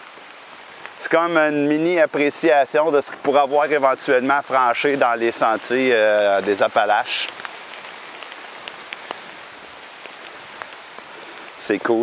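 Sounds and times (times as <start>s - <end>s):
raindrops ticking: 0.0s - 12.0s
steady rain falling: 0.0s - 12.0s.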